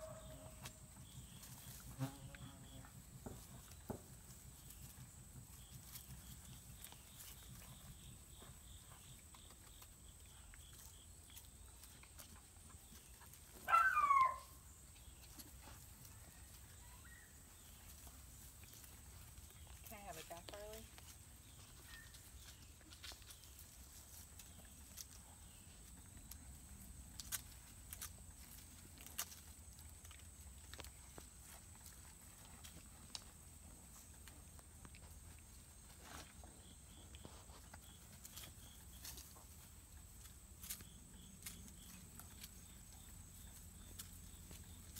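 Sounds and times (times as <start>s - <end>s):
puppy crying: 13.7s - 14.6s.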